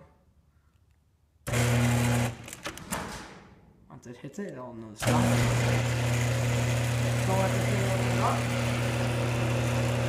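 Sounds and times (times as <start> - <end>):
garage door opener motor hum: 1.4 - 3.4, 5.0 - 10.0.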